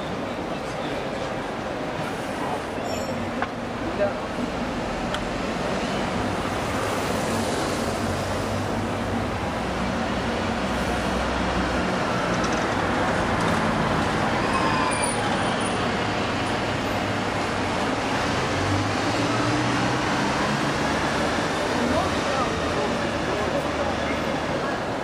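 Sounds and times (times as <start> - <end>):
vehicle engines running: 3.6 - 25.0
faint voices: 21.2 - 25.0.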